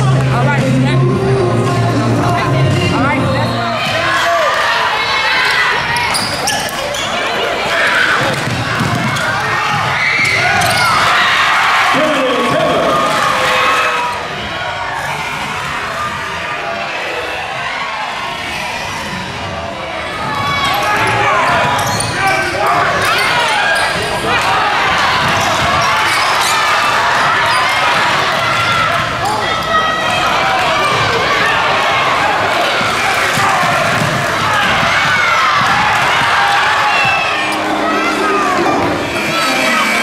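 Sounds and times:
voices of players and crowd: 0.0 - 40.0
sneakers squeaking: 5.4 - 11.2, 20.3 - 24.3, 25.1 - 29.8.

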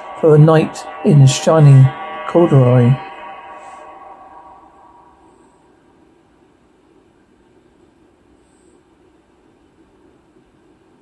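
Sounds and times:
lingering musical note: 0.0 - 6.2
low steady rushing noise: 0.0 - 7.0.

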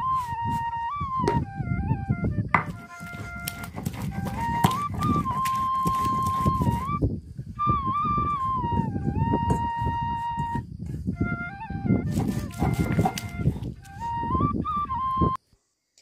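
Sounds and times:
flute melody: 0.0 - 15.4.

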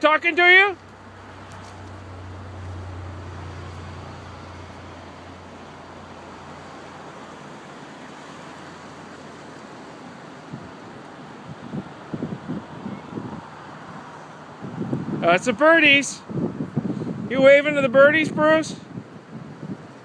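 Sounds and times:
wind on microphone: 10.5 - 20.0.

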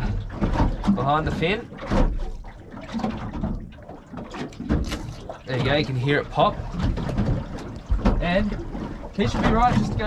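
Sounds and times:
low wet squelching: 0.0 - 10.0.

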